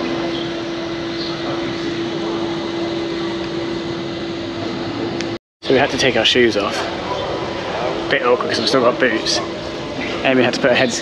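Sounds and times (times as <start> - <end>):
constant low hum: 0.0 - 11.0.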